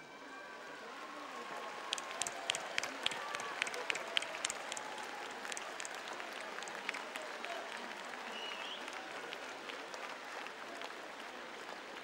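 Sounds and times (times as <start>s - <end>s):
crowd noise: 0.0s - 12.0s
audience applauding: 0.8s - 12.0s.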